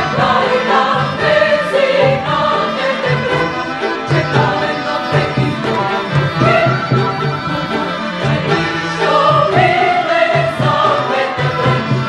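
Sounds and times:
chamber ensemble playing: 0.0 - 12.0
mixed choir singing: 0.0 - 12.0.

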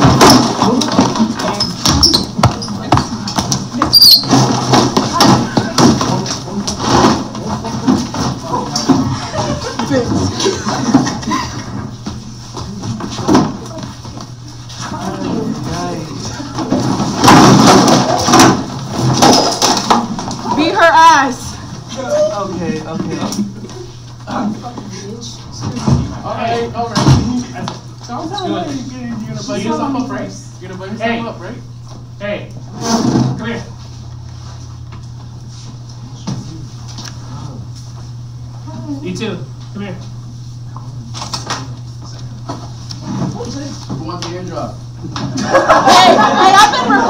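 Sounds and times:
low room hum: 0.0 - 47.0
sharp knocks: 16.8 - 20.1.

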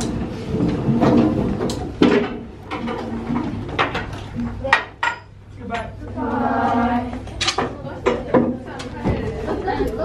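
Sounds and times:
objects clattering on desks: 0.0 - 5.3.

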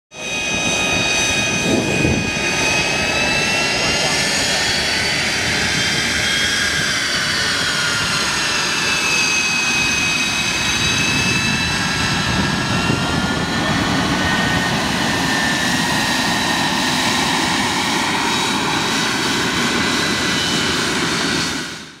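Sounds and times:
jet engine rush with high whine: 0.1 - 22.0.

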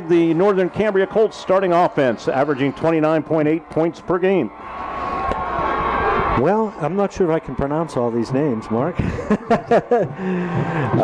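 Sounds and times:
man laughing: 9.0 - 11.0.

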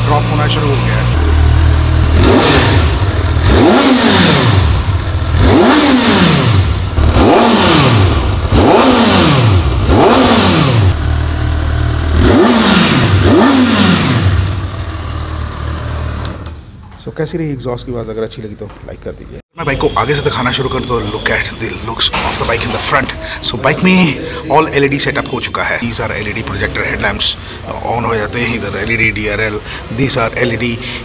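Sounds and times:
motorcycle engine idling: 0.0 - 16.2
motorcycle engine revving: 0.0 - 16.6.

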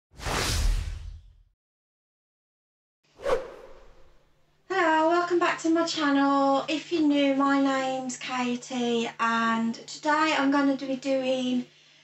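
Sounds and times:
whoosh with deep boom: 0.2 - 1.4, 3.2 - 4.2.

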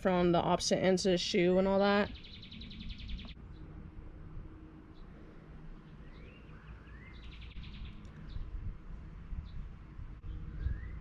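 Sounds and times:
songbird singing: 0.0 - 11.0.

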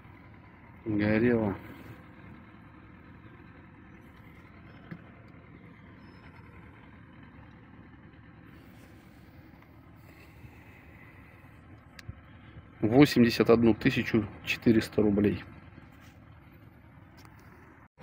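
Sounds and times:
low outdoor rumble: 0.0 - 18.0
light tick: 11.8 - 12.1.

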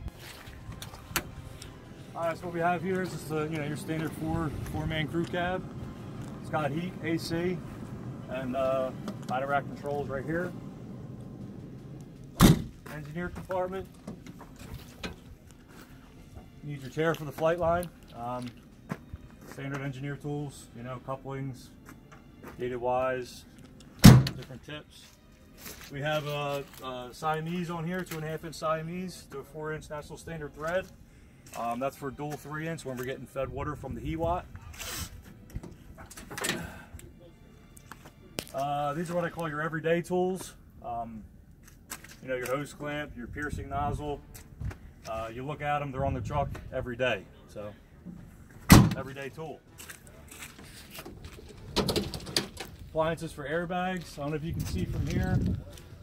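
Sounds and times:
metal cab door slamming: 12.4 - 12.8, 24.0 - 24.4, 48.7 - 49.0.

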